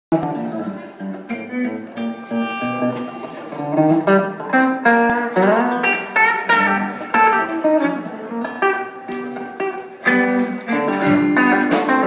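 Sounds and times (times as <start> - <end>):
fingerpicked electric guitar blues: 0.1 - 12.0.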